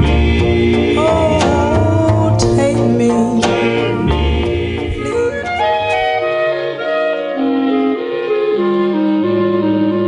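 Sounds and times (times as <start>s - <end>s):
sustained bass notes: 0.0s - 7.2s
soul jazz wind instrument: 0.0s - 10.0s.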